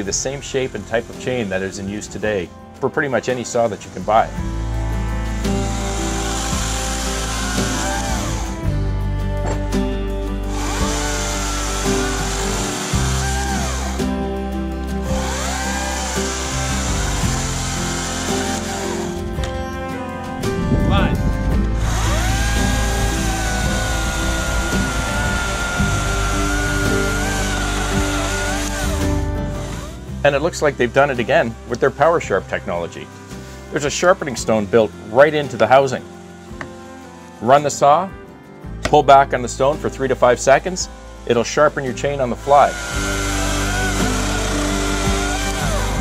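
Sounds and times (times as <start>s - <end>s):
electric chainsaw cutting log: 0.0s - 2.4s, 3.1s - 19.8s, 21.5s - 38.0s, 39.6s - 46.0s
background music: 0.0s - 46.0s.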